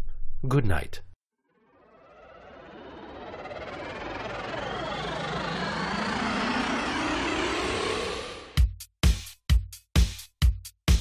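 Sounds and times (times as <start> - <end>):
rising synth sweep: 1.4 - 8.6.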